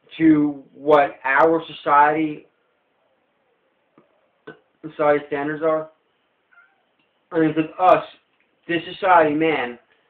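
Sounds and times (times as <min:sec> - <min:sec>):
man speaking: 0:00.0 - 0:02.5, 0:04.5 - 0:06.0, 0:07.3 - 0:09.9
soft clicks: 0:08.2 - 0:08.7.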